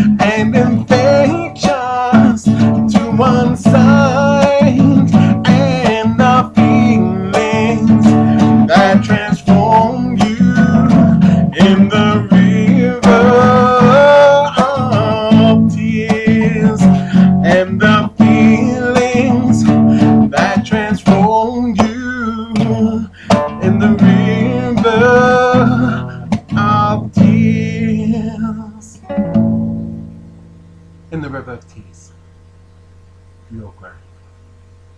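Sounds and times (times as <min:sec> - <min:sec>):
man singing: 0:00.0 - 0:29.1
strummed acoustic guitar: 0:00.0 - 0:31.8.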